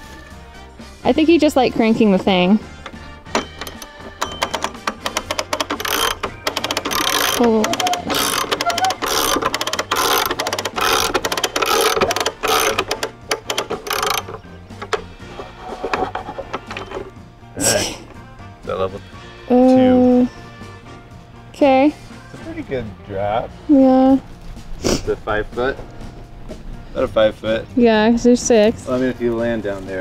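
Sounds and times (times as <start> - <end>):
background music: 0.0 - 30.0
winch ratchet clicking: 2.6 - 17.2.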